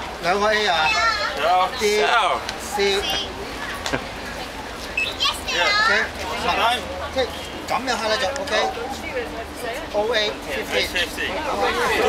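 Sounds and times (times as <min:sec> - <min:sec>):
background chatter of people: 0:00.0 - 0:12.0.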